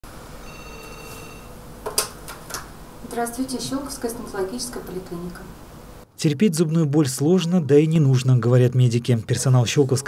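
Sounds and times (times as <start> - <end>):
desk telephone ringing: 0.4 - 1.6.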